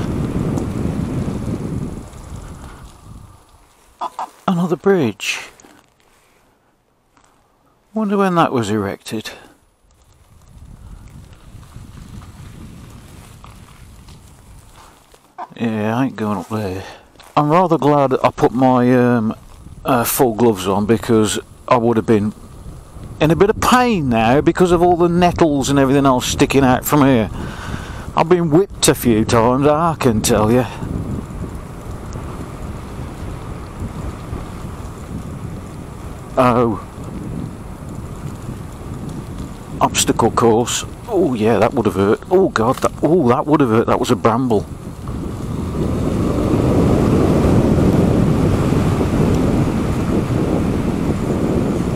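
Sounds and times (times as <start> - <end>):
wind buffeting microphone: 0.0 - 5.7, 9.6 - 51.9
bike rolling over gravel: 0.0 - 51.9.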